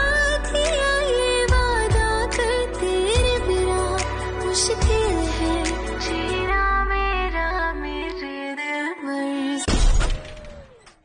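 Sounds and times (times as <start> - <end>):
music: 0.0 - 9.7
glass shattering effect: 9.7 - 10.9.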